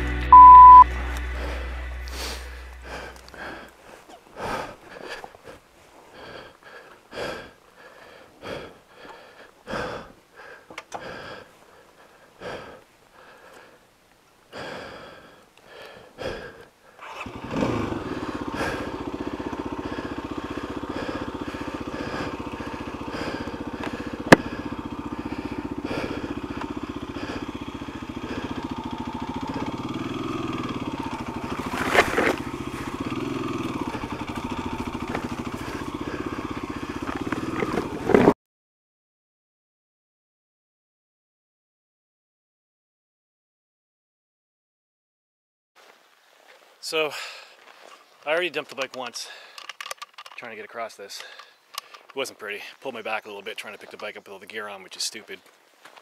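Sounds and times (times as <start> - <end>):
motorcycle engine running: 0.0 - 3.8, 17.0 - 38.4
person breathing hard: 1.1 - 13.9, 14.5 - 38.0, 47.0 - 48.1, 49.1 - 50.3, 51.1 - 52.2.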